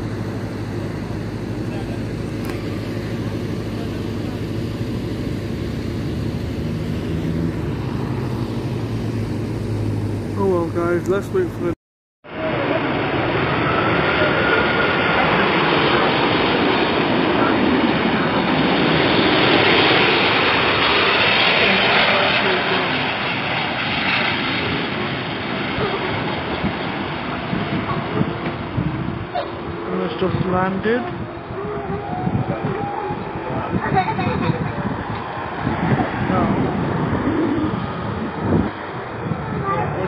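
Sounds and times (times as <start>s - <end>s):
jet engine rush: 0.0s - 40.0s.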